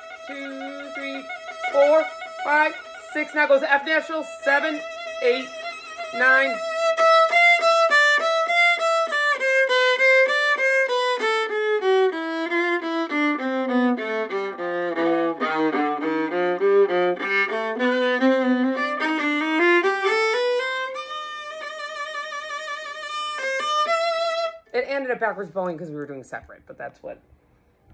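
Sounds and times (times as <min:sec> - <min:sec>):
bowed string instrument: 0:00.0 - 0:25.0.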